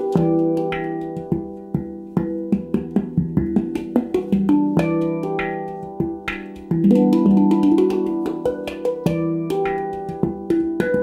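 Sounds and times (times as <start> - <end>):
handpan played by hand: 0.0 - 11.0.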